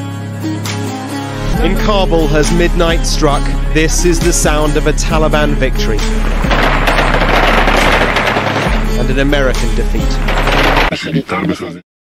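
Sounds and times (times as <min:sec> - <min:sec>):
music with steady bass: 0:00.0 - 0:10.9
rapid automatic gunfire: 0:06.1 - 0:10.9.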